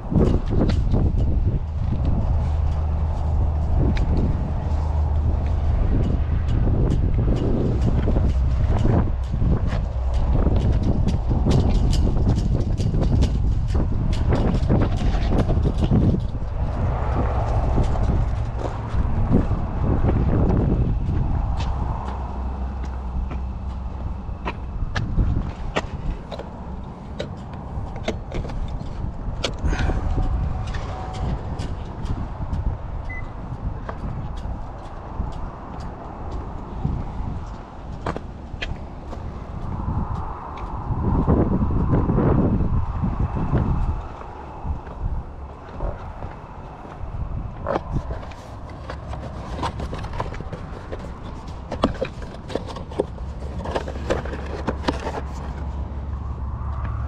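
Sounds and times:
wind rumbling on microphone: 0.0 - 57.0.

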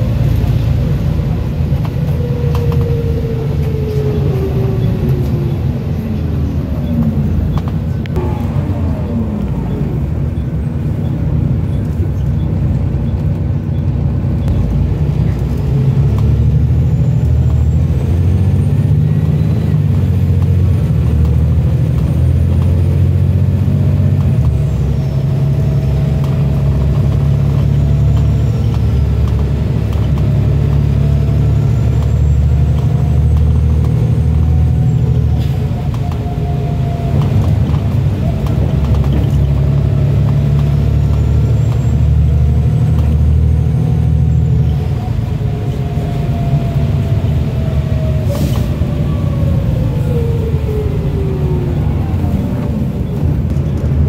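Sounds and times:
whine: 0.0 - 11.9
bus diesel engine drone: 0.0 - 54.0.

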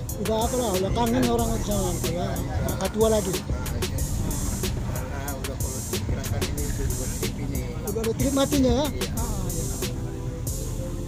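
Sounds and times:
man's voice: 0.0 - 10.2
bus engine and road rumble: 0.0 - 11.0
music with a beat: 0.0 - 11.0.

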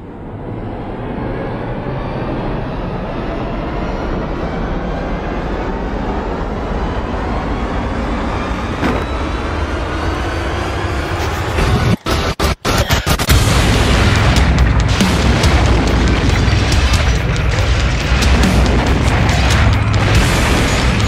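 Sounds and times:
loud roaring rumble: 0.0 - 21.0.

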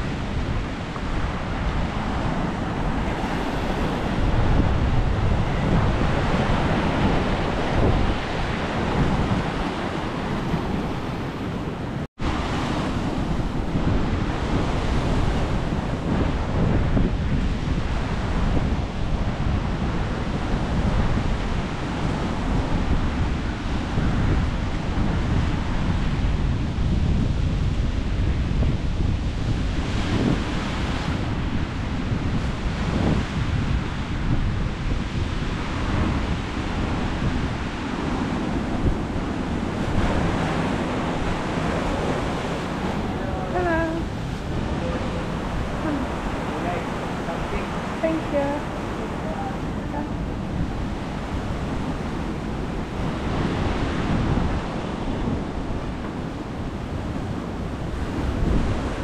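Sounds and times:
wind rumbling on microphone: 0.0 - 59.0
surf washing onto rocky shore: 29.6 - 59.0.

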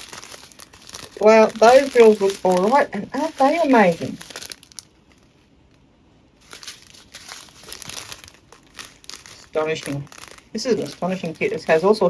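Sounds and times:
plastic packet crinkling: 0.0 - 5.8, 6.4 - 12.0.

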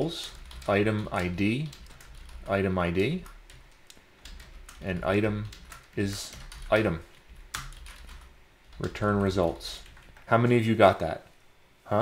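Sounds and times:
computer keyboard typing: 0.2 - 10.3.

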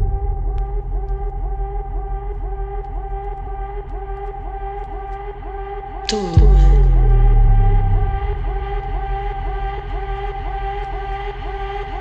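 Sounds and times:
sustained synth drone: 0.0 - 12.0.

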